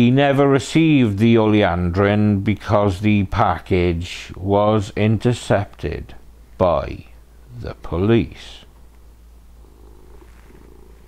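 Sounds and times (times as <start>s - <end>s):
cat purring: 9.5s - 11.0s.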